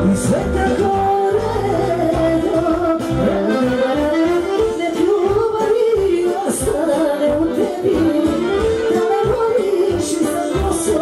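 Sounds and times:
accordion: 0.0s - 11.0s
woman singing: 0.0s - 11.0s.

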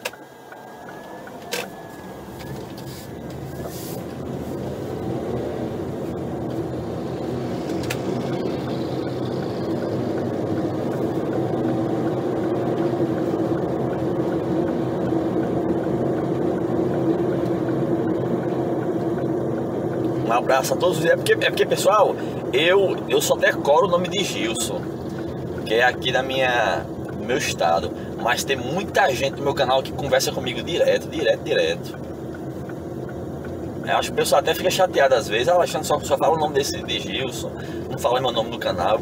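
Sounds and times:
car engine and road noise: 0.0s - 39.0s.

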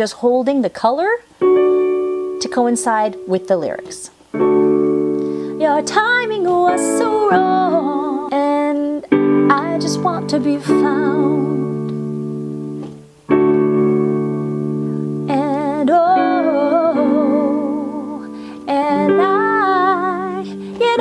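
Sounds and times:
person singing with vibrato: 1.4s - 12.2s, 14.7s - 21.0s
electronic keyboard chords: 1.4s - 21.0s.

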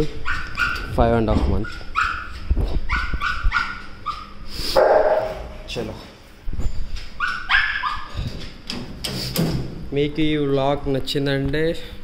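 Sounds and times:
dog yipping and whining: 0.2s - 0.9s, 1.6s - 5.4s, 7.2s - 8.1s.

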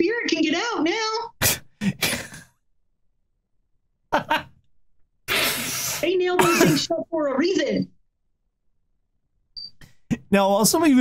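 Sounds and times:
hissing intake of breath: 5.3s - 6.0s.

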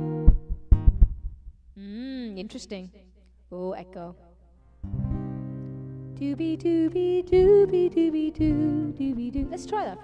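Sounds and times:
acoustic guitar chord ringing: 4.6s - 10.0s.

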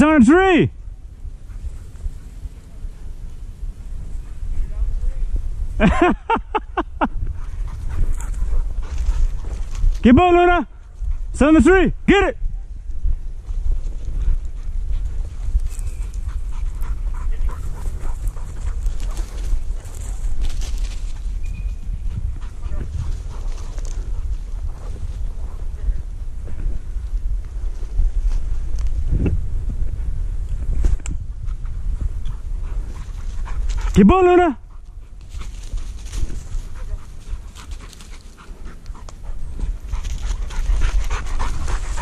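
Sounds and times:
low wind rumble on microphone: 0.0s - 34.0s, 34.6s - 42.0s
footsteps through dry brush: 7.3s - 10.1s, 12.8s - 31.0s, 34.7s - 42.0s.

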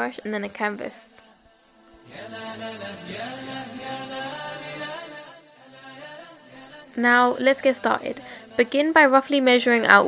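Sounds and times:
wordless chant-like vocal: 0.0s - 10.0s.

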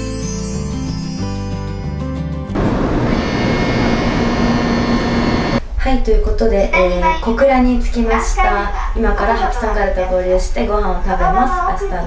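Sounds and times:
train platform noise: 2.6s - 5.8s.

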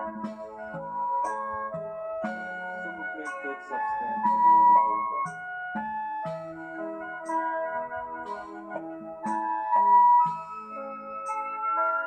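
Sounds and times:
electronic keyboard pop music: 0.0s - 12.0s.

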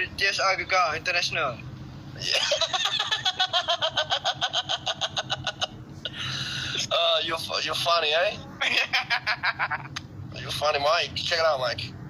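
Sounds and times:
young man laughing hard: 2.2s - 6.4s, 8.6s - 10.0s.

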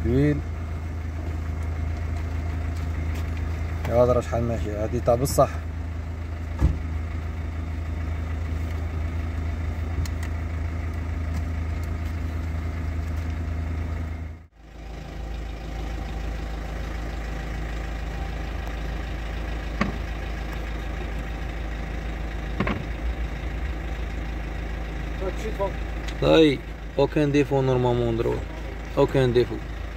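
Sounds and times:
car engine idling: 0.0s - 29.9s.

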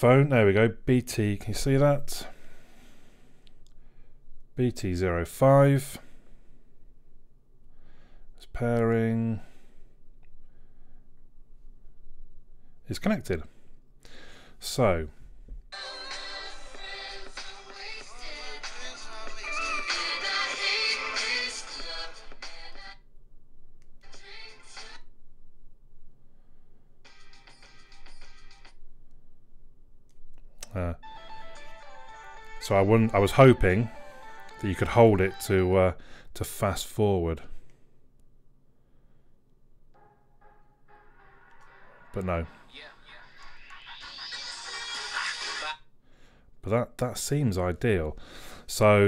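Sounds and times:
pop song from phone speaker: 15.8s - 23.1s, 24.0s - 25.2s, 27.0s - 28.8s, 31.0s - 36.0s, 40.0s - 45.8s.

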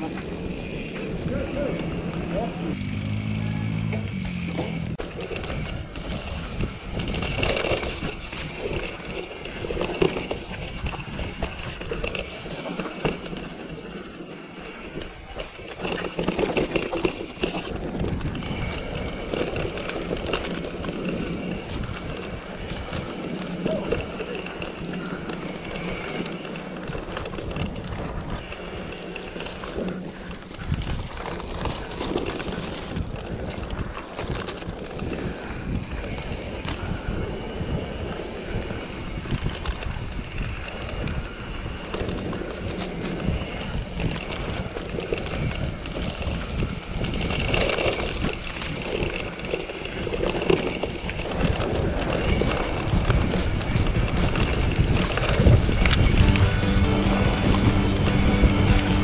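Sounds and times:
bike frame and chain rattling: 0.0s - 59.0s
bike tyre rumble: 0.0s - 59.0s.

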